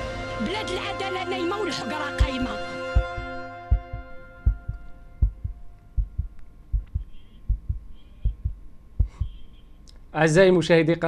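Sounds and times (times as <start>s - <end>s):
sustained music chord: 0.0s - 6.0s
heartbeat thumps: 2.2s - 9.5s.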